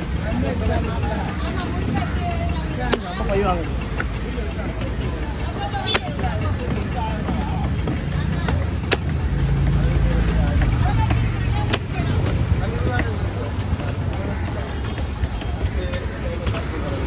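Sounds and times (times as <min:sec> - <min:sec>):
market chatter: 0:00.0 - 0:17.0.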